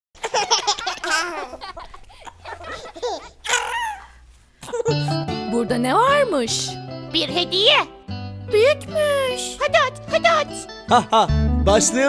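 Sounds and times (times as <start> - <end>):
cartoon child vocal sounds: 3.4 - 4.1
children's song music: 4.7 - 12.0.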